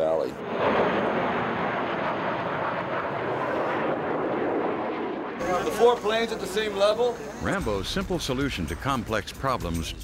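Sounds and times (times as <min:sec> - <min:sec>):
jet fighters flying past: 0:00.0 - 0:09.3.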